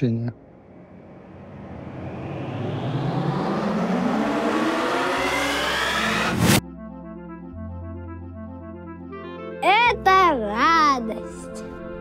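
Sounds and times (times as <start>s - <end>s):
rising whoosh: 0.4s - 6.6s.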